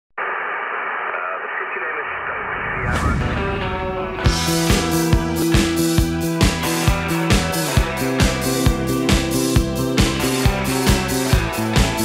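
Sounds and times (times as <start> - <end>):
radio static hiss: 0.2 - 3.4.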